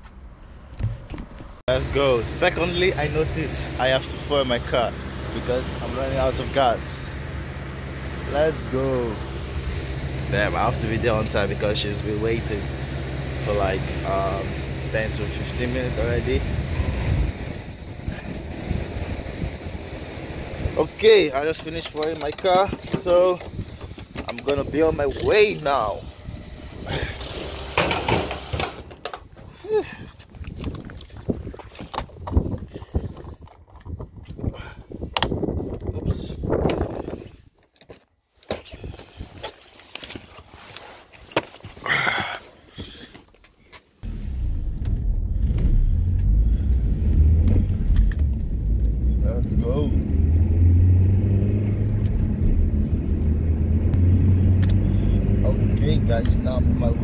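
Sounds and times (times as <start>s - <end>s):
fuel nozzle clicks and knocks: 21.6s - 24.6s
car driving rumble: 44.0s - 57.0s.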